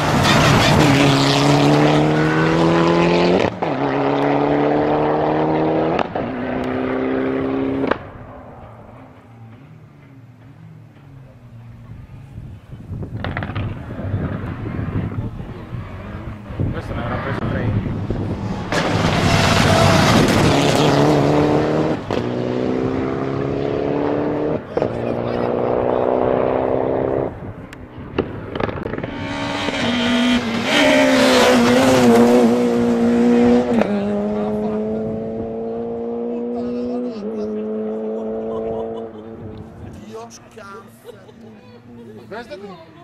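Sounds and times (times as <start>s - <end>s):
rally cars accelerating hard: 0.0s - 9.8s, 10.4s - 40.0s.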